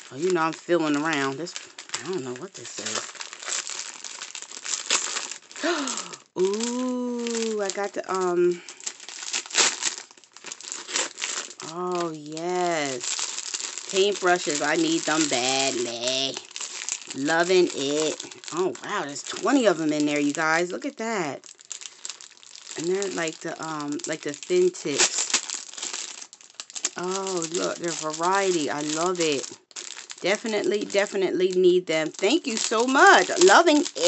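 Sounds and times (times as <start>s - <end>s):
paper tearing and crumpling: 0.0s - 20.9s, 21.6s - 34.0s
plastic sleeve crinkling: 0.0s - 34.0s.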